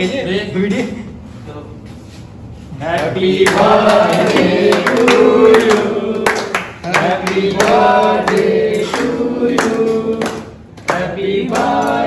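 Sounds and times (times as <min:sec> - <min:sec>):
group of people singing together: 0:02.7 - 0:12.0
hand clapping: 0:02.9 - 0:12.0.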